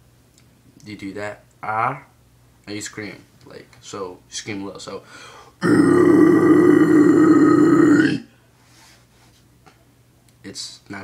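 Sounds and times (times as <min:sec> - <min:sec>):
man screaming guttural growl: 0:05.6 - 0:08.3.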